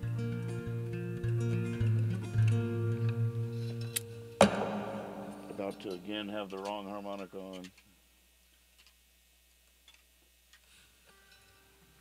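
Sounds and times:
acoustic guitar ringing notes: 4.2s - 6.6s
sharp knock: 4.4s - 6.4s.

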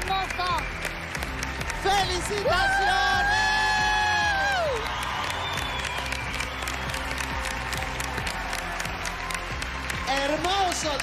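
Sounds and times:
audience applauding and cheering: 0.0s - 11.0s
background music: 0.0s - 11.0s.

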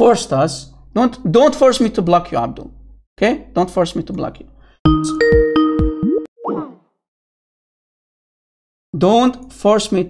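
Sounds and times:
app notification chiming tone: 4.9s - 6.8s.

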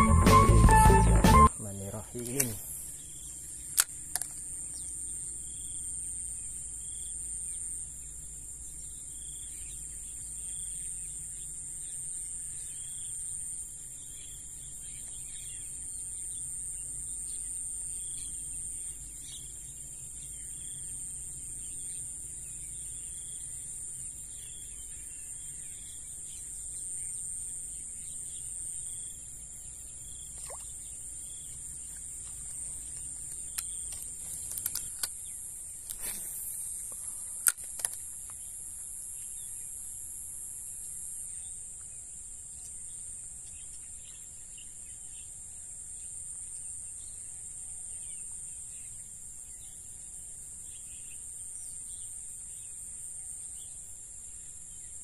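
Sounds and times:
short high call: 0.0s - 1.6s
shrill insect chorus: 0.0s - 55.0s.

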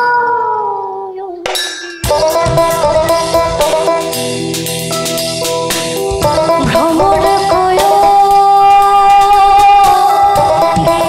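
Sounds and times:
sharp metallic strike: 1.5s - 4.2s
band playing: 2.0s - 11.0s
woman singing a long note: 6.5s - 11.0s.

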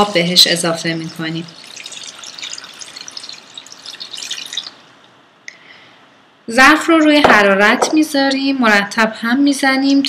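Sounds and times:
water pouring into metal pot: 0.7s - 4.8s.

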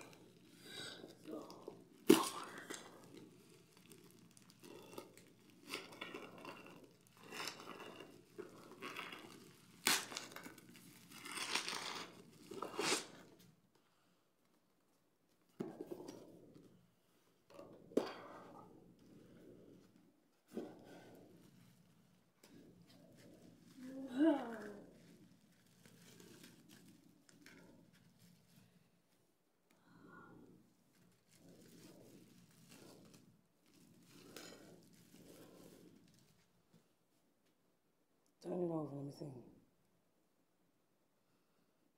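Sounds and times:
packaging tearing and rustling: 0.1s - 13.4s, 23.8s - 28.1s.

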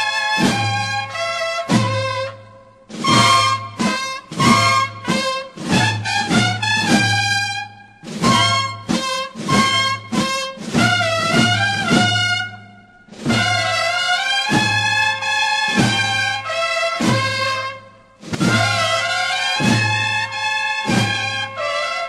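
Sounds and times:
drum strokes: 0.3s - 16.4s, 17.0s - 21.4s
bugle phrases: 18.4s - 22.0s.

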